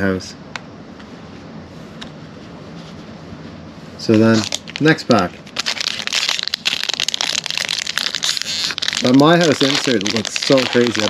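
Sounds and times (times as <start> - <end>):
foil wrapper crinkling: 4.2 - 11.0.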